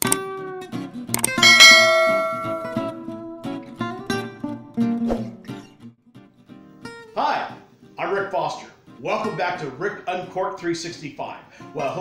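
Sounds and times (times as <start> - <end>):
strummed acoustic guitar music: 0.0 - 8.0
quick clicks: 1.2 - 1.4
bright bell ding: 1.4 - 3.0.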